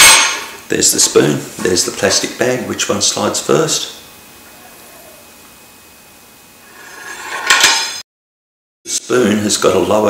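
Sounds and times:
metal spoon scraping wood: 0:06.7 - 0:07.7.

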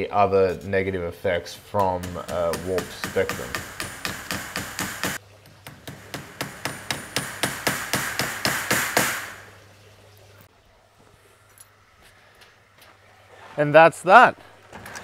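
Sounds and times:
hammer tapping nails into wood: 0:01.8 - 0:09.2.

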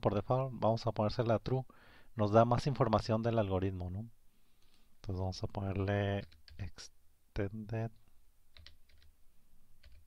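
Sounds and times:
typing on keyboard: 0:06.2 - 0:06.6, 0:08.6 - 0:09.1, 0:09.8 - 0:10.0.

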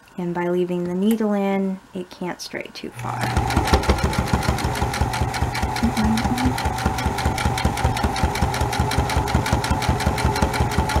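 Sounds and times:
sewing machine stitching: 0:03.0 - 0:11.0.

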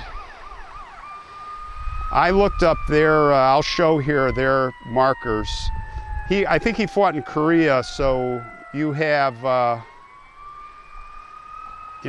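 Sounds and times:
faint siren wailing: 0:00.0 - 0:12.0.

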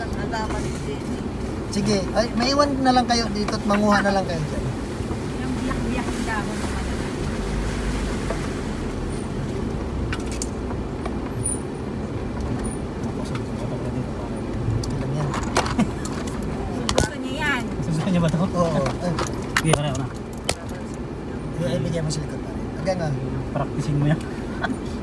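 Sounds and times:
vehicle rumbling on dirt track: 0:00.0 - 0:25.0.

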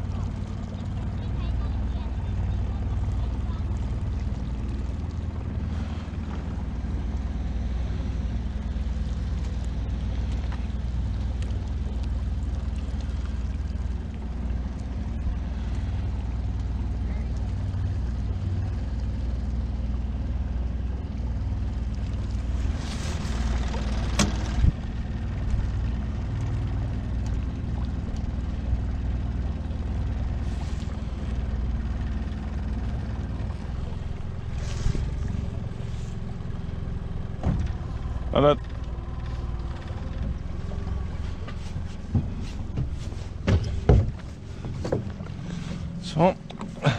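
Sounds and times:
outboard motor running: 0:00.0 - 0:46.9.

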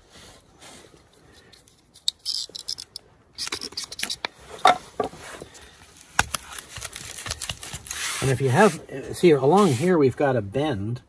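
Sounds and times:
tape handling clicks and knocks: 0:06.1 - 0:08.0.

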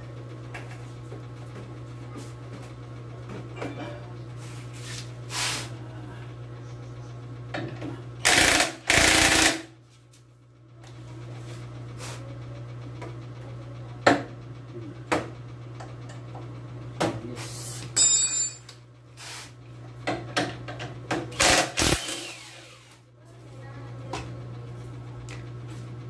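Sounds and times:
impact driver bursts: 0:08.2 - 0:09.7, 0:21.3 - 0:22.9.

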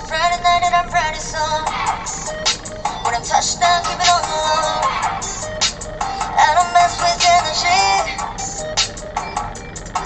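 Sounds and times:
pop backing track: 0:00.0 - 0:10.0.

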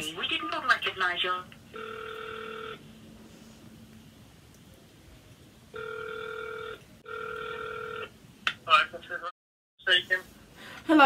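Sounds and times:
telephone ringing tone: 0:01.7 - 0:02.8, 0:05.7 - 0:08.1.

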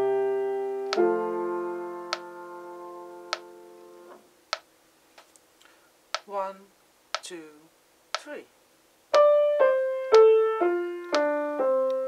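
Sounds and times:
piano chord: 0:00.0 - 0:04.1, 0:09.2 - 0:12.0
metronome clicking: 0:00.9 - 0:01.1, 0:11.0 - 0:12.0
person counting: 0:06.2 - 0:08.5.

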